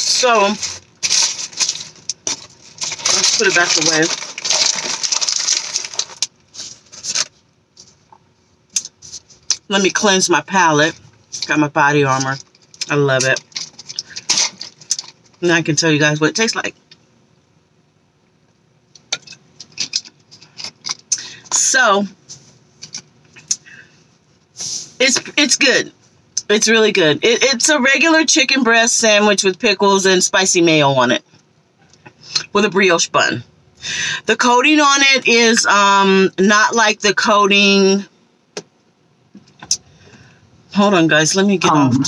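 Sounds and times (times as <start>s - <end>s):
paper wrapper rustling: 0.0s - 7.4s, 12.3s - 15.4s
sharp paper crackles: 0.0s - 7.4s, 12.4s - 15.4s.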